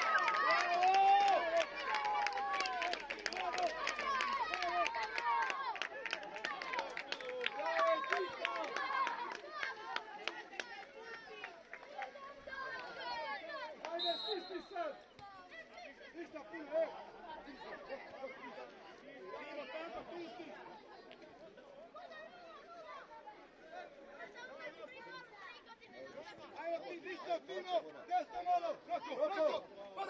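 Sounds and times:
crowd chattering and calling out: 0:00.0 - 0:30.0.

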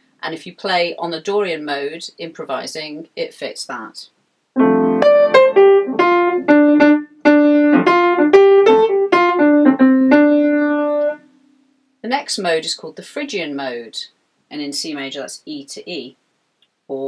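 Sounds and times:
piano melody: 0:04.6 - 0:11.3.

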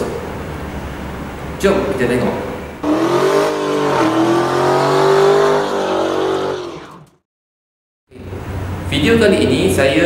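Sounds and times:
car engine at high revs: 0:02.8 - 0:07.2.

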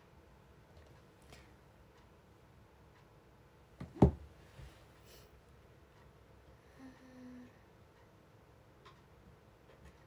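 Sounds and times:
woman humming: 0:06.6 - 0:07.6.

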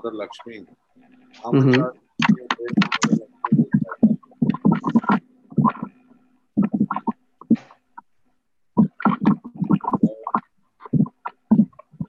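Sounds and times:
garbled voice over video call: 0:00.0 - 0:06.0, 0:08.8 - 0:12.0
faint steady hum: 0:00.0 - 0:12.0.

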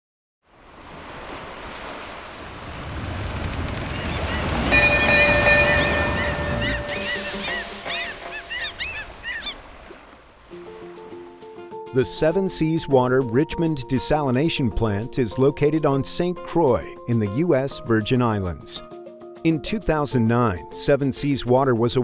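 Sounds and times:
ocean surf: 0:00.5 - 0:12.4
seabird cries: 0:03.7 - 0:10.8
held chime-like tone: 0:04.6 - 0:08.3.

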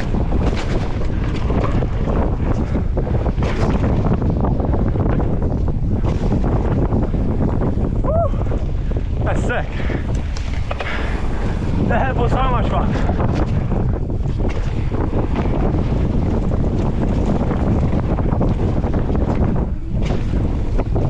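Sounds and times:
bike knocks and rattles: 0:00.0 - 0:07.9, 0:12.2 - 0:21.0
bike tyres on damp dirt: 0:00.0 - 0:21.0
wind buffeting microphone: 0:00.0 - 0:21.0.

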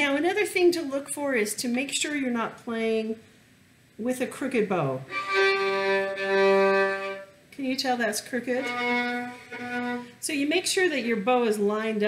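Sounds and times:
violin long low note: 0:05.1 - 0:07.3, 0:08.5 - 0:10.2.

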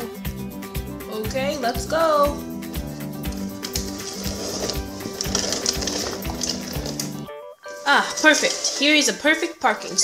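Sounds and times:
background music with beat: 0:00.0 - 0:07.9.

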